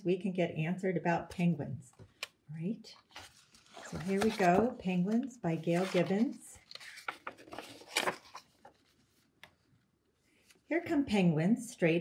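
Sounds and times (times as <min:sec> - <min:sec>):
paper page turning: 0:03.1 - 0:09.2.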